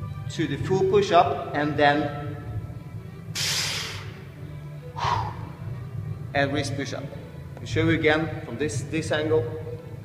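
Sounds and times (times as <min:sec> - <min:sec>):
background music: 0:00.0 - 0:10.0
sharp hissing exhale: 0:03.4 - 0:04.2, 0:05.0 - 0:05.5.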